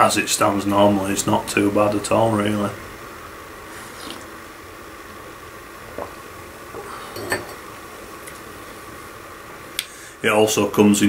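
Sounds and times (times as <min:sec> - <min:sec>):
low room hiss: 0:00.0 - 0:11.0
person sipping from a mug: 0:03.7 - 0:04.3.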